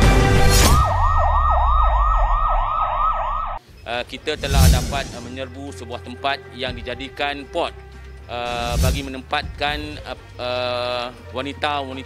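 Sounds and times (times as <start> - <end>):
electronic siren yelping: 0.4 - 3.6.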